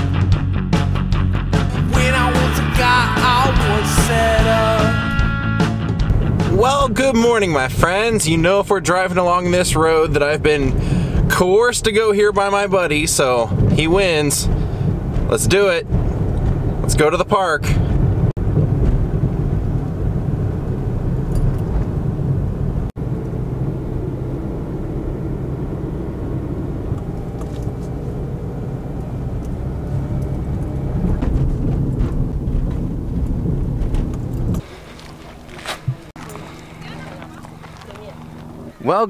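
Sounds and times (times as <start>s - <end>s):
car engine and road rumble: 0.0s - 39.0s.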